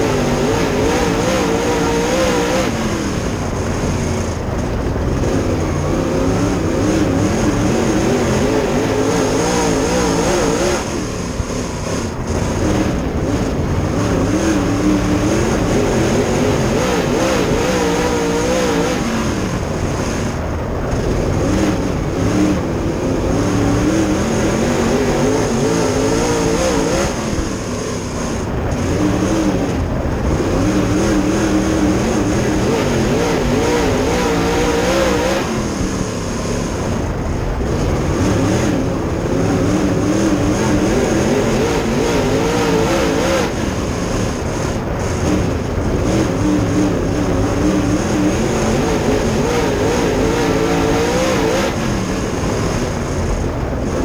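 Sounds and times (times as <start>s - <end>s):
race car engine revving: 0.0s - 54.0s.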